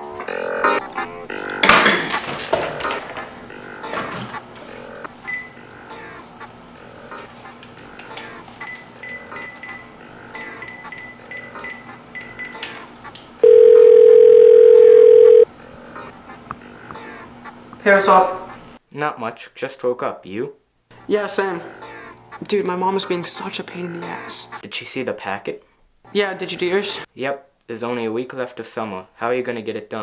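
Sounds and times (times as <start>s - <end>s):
phone key beeps: 13.4s - 15.4s
telephone ringback tone: 13.4s - 15.5s.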